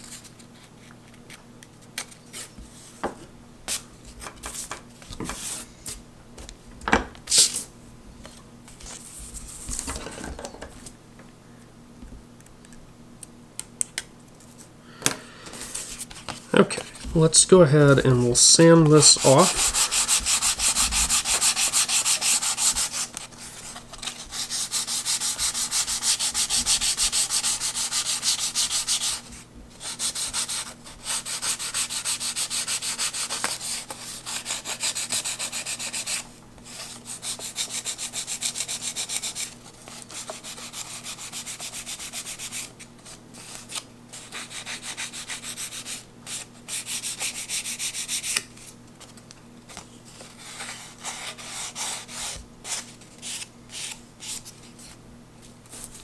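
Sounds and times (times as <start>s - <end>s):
sanding block on wood: 18.3s - 23.2s, 24.2s - 39.5s, 40.2s - 42.6s, 44.2s - 48.4s.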